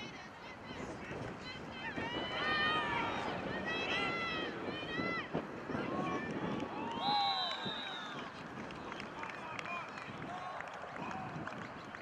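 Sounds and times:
people shouting and yelling: 0:00.0 - 0:08.2.

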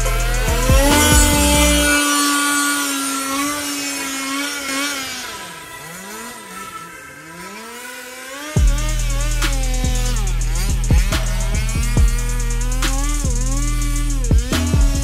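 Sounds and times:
background music with bass beat: 0:00.0 - 0:02.0, 0:08.6 - 0:15.0
electric toy car motors whining: 0:00.0 - 0:15.0.

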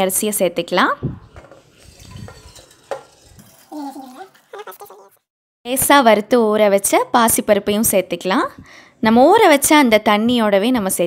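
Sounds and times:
wet rice scraped from steel bowl: 0:01.2 - 0:04.4.

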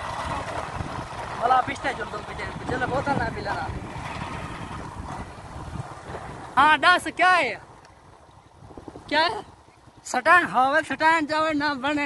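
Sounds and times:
small motorcycle engine: 0:00.0 - 0:06.4
wind on microphone: 0:00.0 - 0:11.6.

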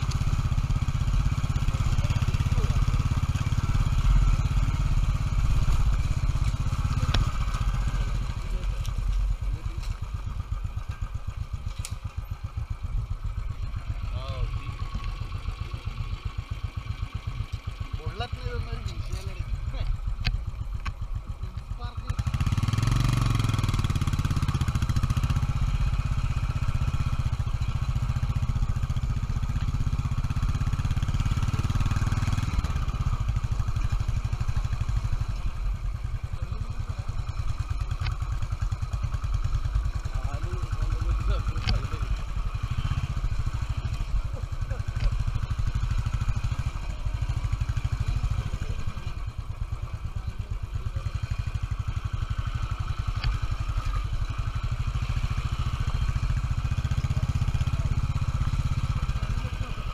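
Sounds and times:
motorcycle engine running: 0:00.0 - 0:59.9.

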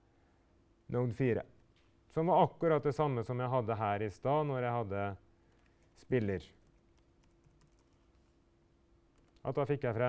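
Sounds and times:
faint steady hum: 0:00.0 - 0:10.0
computer keyboard typing: 0:06.6 - 0:08.2, 0:09.1 - 0:09.4.

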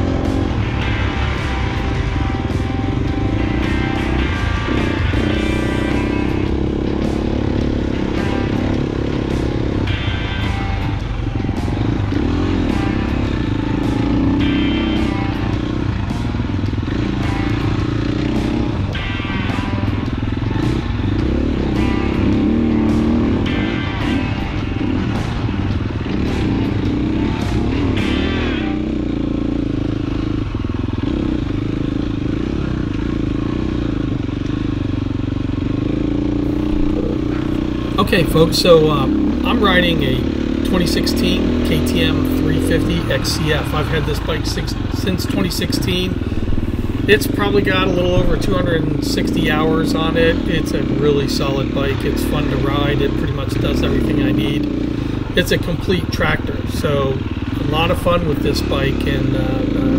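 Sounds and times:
music with steady beat: 0:00.0 - 0:32.2
dirt bike engine revving: 0:00.0 - 0:59.9.

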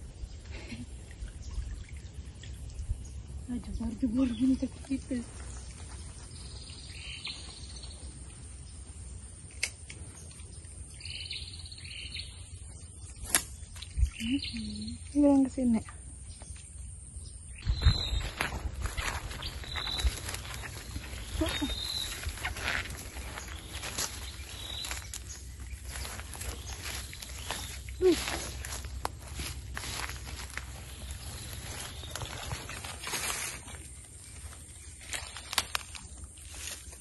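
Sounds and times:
footsteps through undergrowth: 0:04.9 - 0:07.9, 0:17.6 - 0:37.0.

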